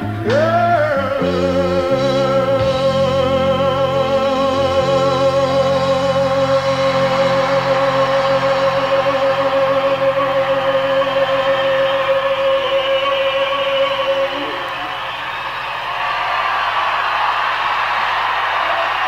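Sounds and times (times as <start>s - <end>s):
large outdoor concert crowd: 0.0s - 19.0s.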